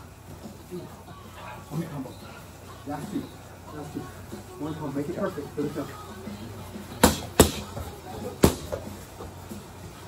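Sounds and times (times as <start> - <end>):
gloves striking pads: 7.0 - 7.8, 8.4 - 8.8.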